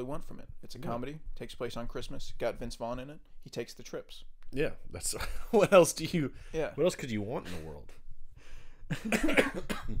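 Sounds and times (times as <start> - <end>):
man coughing: 8.9 - 10.0.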